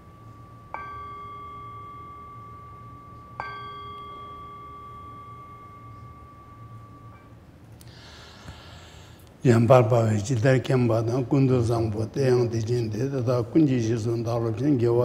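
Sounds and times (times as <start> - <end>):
meditation bell ringing: 0.0 - 7.7.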